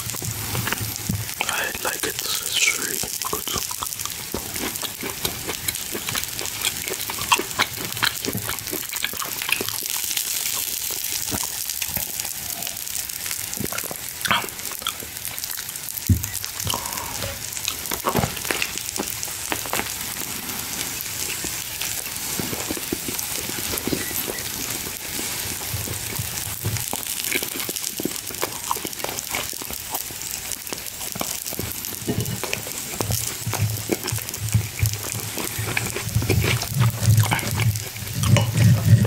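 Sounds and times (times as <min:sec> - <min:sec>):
steady hiss: 0:00.0 - 0:11.6, 0:12.3 - 0:39.0
person chewing: 0:00.0 - 0:39.0.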